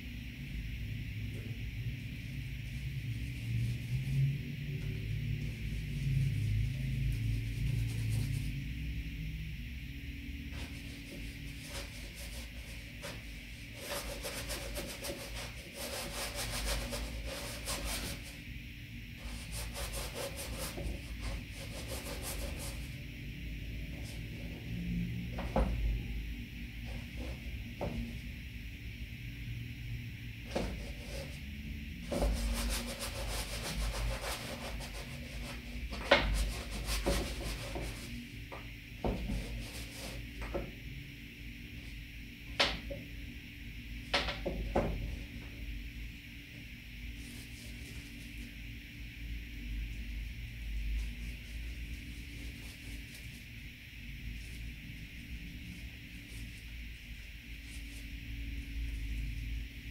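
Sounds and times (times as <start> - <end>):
paintbrush rubbing on canvas: 5.4 - 8.8, 10.5 - 18.5, 19.1 - 23.0, 32.0 - 38.3, 39.2 - 40.3, 47.1 - 48.6, 51.0 - 59.4.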